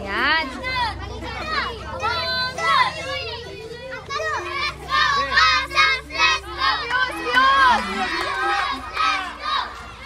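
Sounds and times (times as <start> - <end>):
children shouting: 0.4 - 10.0.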